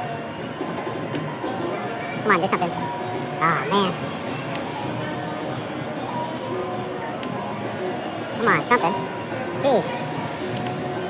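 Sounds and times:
slot machine tones and jingles: 0:01.0 - 0:04.0.

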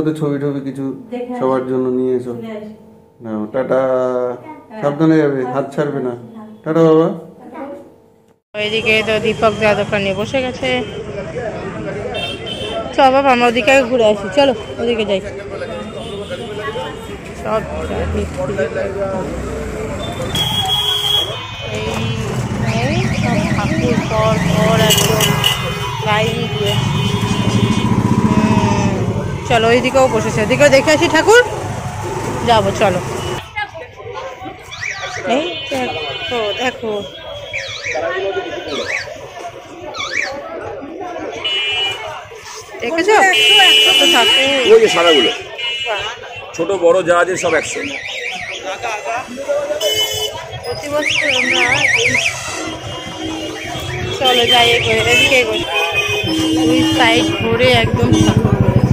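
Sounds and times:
people talking: 0:08.6 - 0:31.6, 0:32.3 - 0:37.2, 0:37.9 - 0:58.9
passing traffic: 0:08.6 - 0:58.9
warbling electronic alarm tone: 0:50.8 - 0:58.9.

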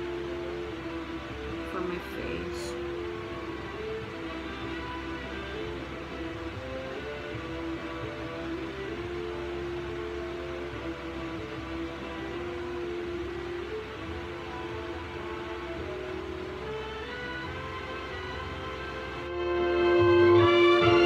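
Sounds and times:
slow music with held notes: 0:00.0 - 0:21.0.

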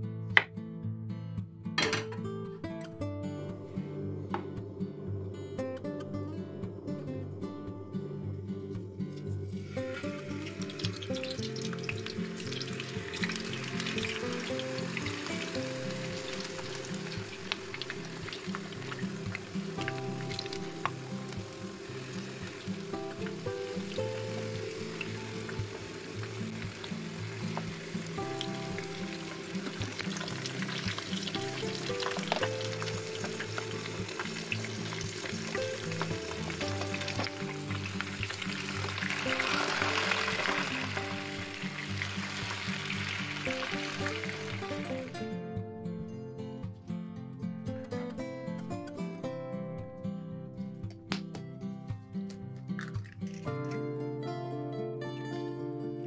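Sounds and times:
background music: 0:00.0 - 0:56.0
potatoes sizzling in oil: 0:09.6 - 0:45.2.

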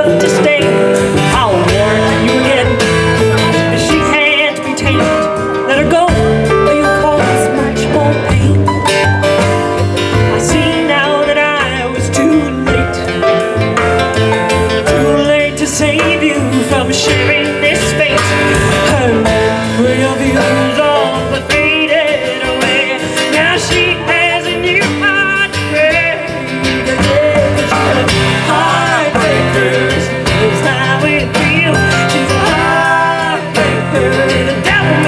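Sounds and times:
woman singing: 0:00.0 - 0:09.1, 0:10.3 - 0:13.4, 0:14.7 - 0:35.0
acoustic guitar: 0:00.0 - 0:35.0
drums: 0:00.0 - 0:35.0
electric stage piano: 0:00.0 - 0:35.0
upright bass: 0:00.0 - 0:35.0.

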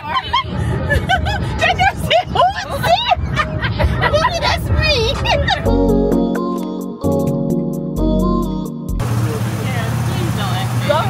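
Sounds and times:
people talking: 0:00.0 - 0:05.8, 0:09.0 - 0:11.0
shuttle cart humming: 0:09.0 - 0:11.0.

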